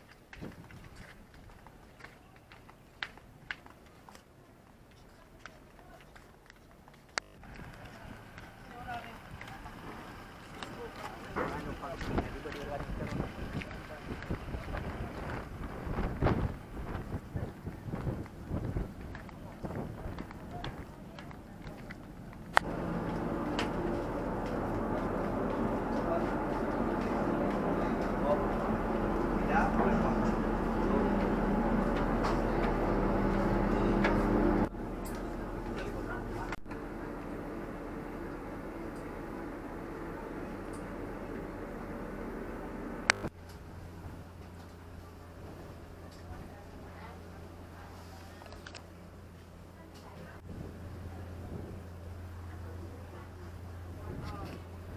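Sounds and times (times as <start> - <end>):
footsteps: 0.0 - 36.7
people talking: 4.3 - 6.8, 7.5 - 22.9, 23.5 - 41.9, 45.0 - 48.8, 49.7 - 54.8
ferry engines droning: 7.0 - 54.9.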